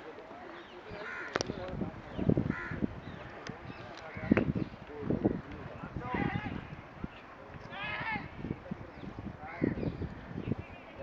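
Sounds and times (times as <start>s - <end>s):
crow cawing: 1.0s - 1.4s, 2.5s - 2.9s.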